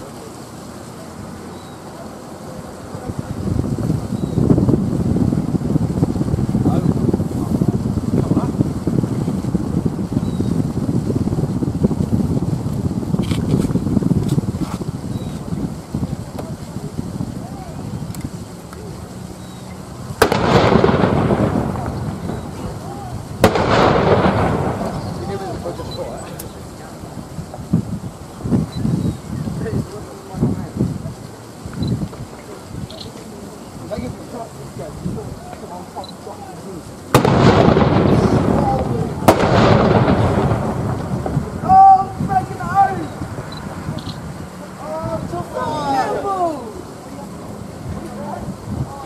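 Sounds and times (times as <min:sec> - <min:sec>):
field gun bang with echo: 0:20.2 - 0:21.6, 0:39.3 - 0:40.6
field gun firing blank: 0:20.2 - 0:22.6, 0:23.4 - 0:25.4, 0:37.1 - 0:40.8.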